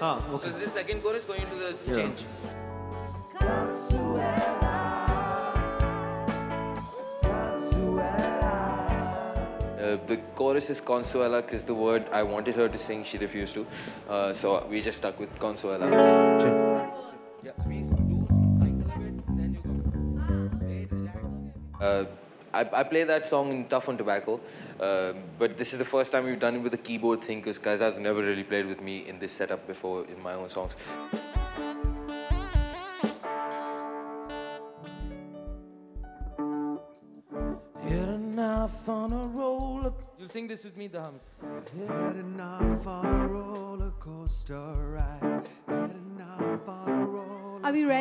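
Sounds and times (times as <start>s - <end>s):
man's voice: 0.0s - 2.5s, 7.0s - 16.8s, 17.4s - 19.9s, 37.8s - 47.7s
keyboard chords: 1.4s - 14.0s, 15.8s - 22.0s, 30.9s - 38.9s
electric guitar chords: 1.9s - 10.3s, 15.8s - 22.0s, 30.8s - 38.8s
person singing: 3.3s - 10.3s, 37.7s - 40.0s, 41.6s - 47.9s
electric guitar: 15.8s - 21.9s
bass guitar repeating low notes: 17.6s - 22.0s
low thumping beats: 17.6s - 22.0s, 30.7s - 32.9s, 34.8s - 40.2s, 42.6s - 45.4s.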